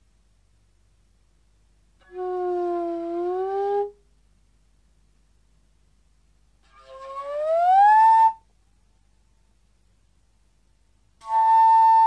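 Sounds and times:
slide flute note gliding upward: 6.7s - 8.4s, 11.2s - 12.0s.

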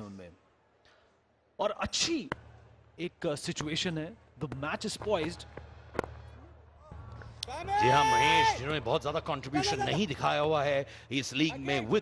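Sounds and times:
stadium background hum: 0.0s - 12.0s
cricket bat hitting ball: 5.6s - 6.2s.

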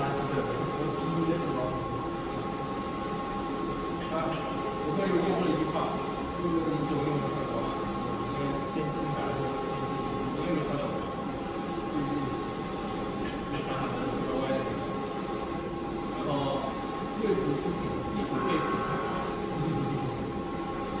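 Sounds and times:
printer carriage mechanical whir: 0.0s - 21.0s.

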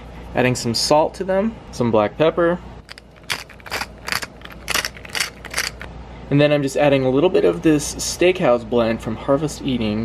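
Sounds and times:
pepper mill grinding: 2.8s - 5.9s.

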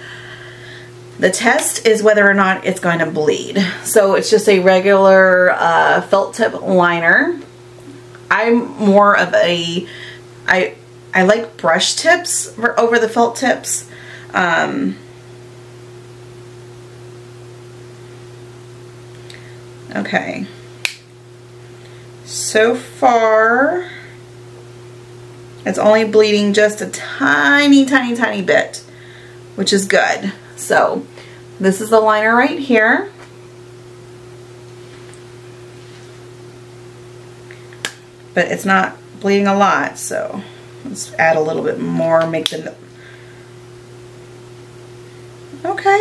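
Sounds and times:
low electrical hum: 0.0s - 46.0s
sharp click: 20.8s - 21.1s.

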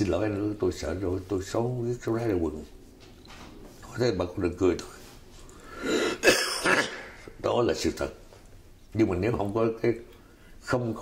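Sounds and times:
man clearing his throat: 6.0s - 7.3s.

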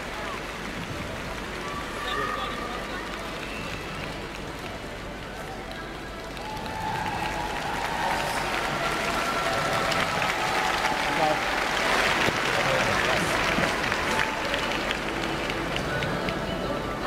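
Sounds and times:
crowd applause and cheering: 0.0s - 17.0s.

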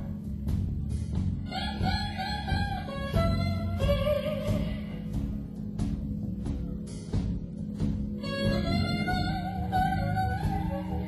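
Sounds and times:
electric blues band playing: 0.0s - 11.0s.

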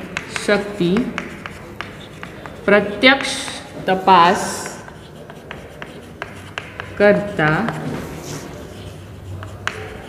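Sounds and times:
chalk tapping on blackboard: 0.0s - 10.0s.

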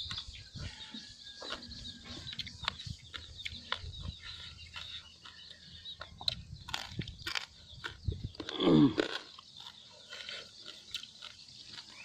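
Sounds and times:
chewing and lip-smacking: 0.0s - 12.0s.

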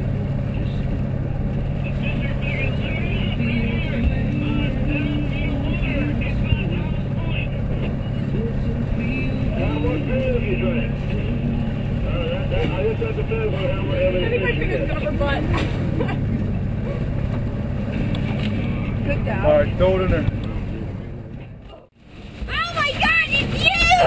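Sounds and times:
outboard motors droning: 0.0s - 24.0s.

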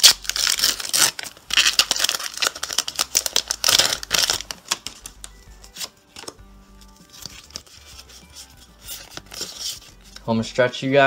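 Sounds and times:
foil wrapper tearing and crinkling: 0.0s - 6.3s.

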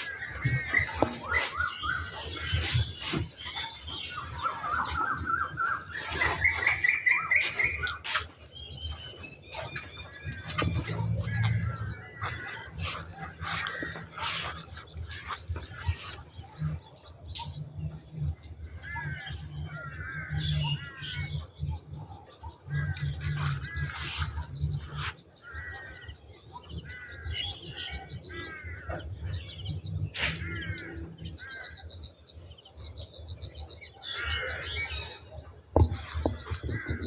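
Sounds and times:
birds chirping: 0.0s - 37.0s.

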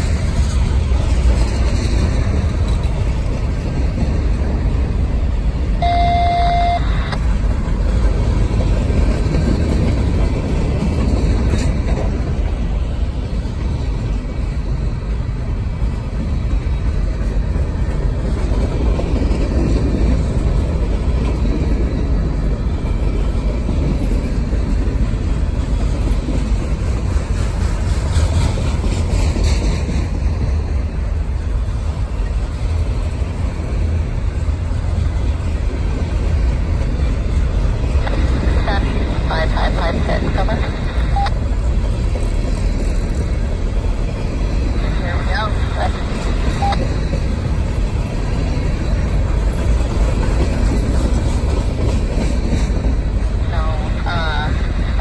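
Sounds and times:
train wheels rumbling on track: 0.0s - 55.0s
short steady tone: 5.8s - 7.2s.

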